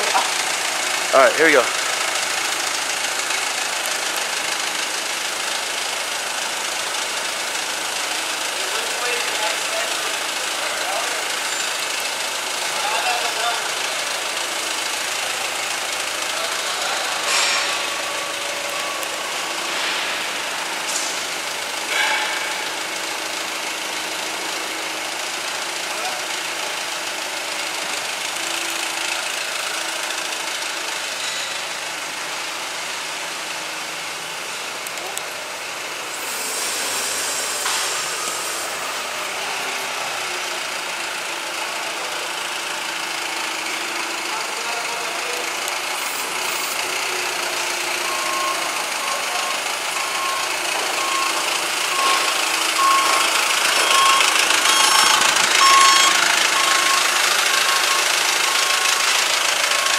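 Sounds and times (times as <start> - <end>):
forklift engine running: 0.0 - 59.9
short beeps: 48.0 - 58.8.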